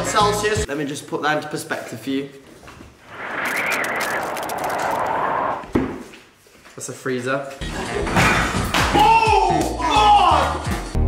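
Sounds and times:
howling wind: 3.0 - 5.7.

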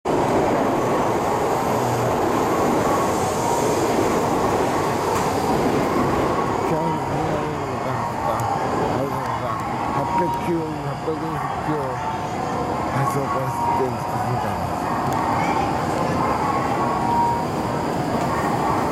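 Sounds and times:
train rushing noise: 0.1 - 18.9.

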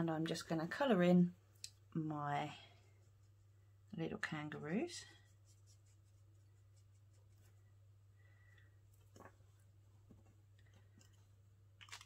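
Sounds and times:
steady low hum: 0.0 - 11.8.

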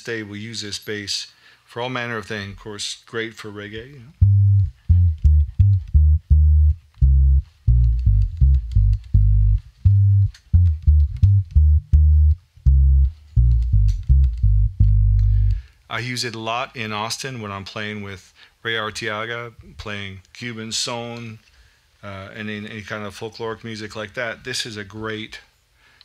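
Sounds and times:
electric bass plucked notes: 3.8 - 15.7.

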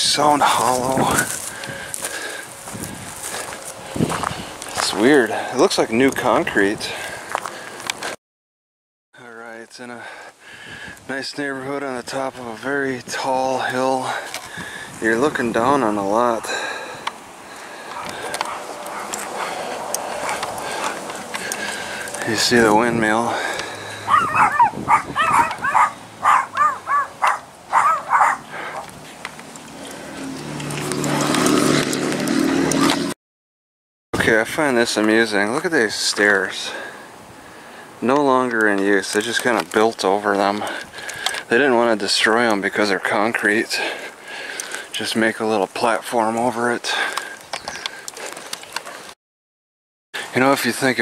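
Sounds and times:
dog yapping barks: 18.0 - 19.2, 24.1 - 28.8
scattered small clicks and ticks: 44.5 - 45.0.

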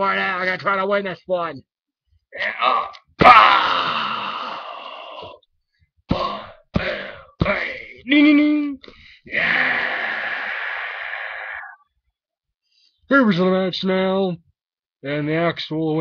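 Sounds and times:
person groaning: 2.4 - 5.4, 6.1 - 8.0, 9.3 - 11.8
person making breathy vocal effects: 2.4 - 5.4, 6.1 - 8.0, 8.8 - 11.8.

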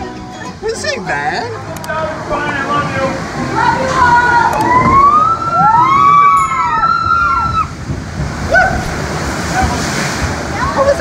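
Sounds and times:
boat rushing through water: 0.0 - 11.0
siren-like wailing tones: 4.5 - 7.7.

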